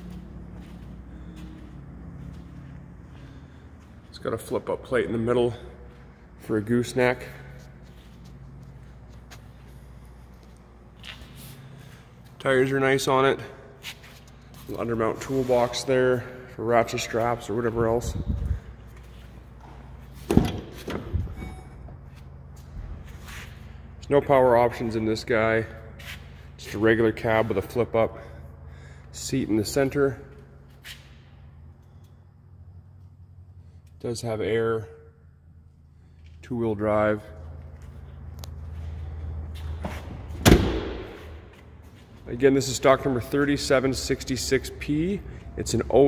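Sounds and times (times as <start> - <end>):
truck door slamming: 40.3 - 41.3.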